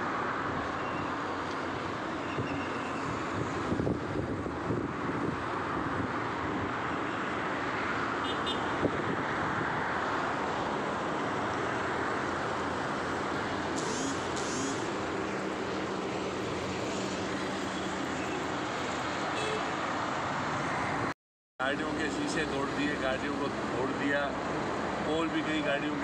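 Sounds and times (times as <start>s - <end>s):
roadside traffic: 0.0s - 26.0s
wind on microphone: 2.4s - 6.8s, 8.7s - 9.8s.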